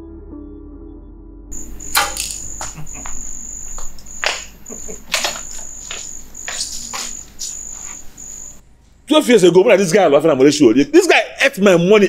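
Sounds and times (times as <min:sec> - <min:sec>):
crickets chirping: 0:01.5 - 0:08.6.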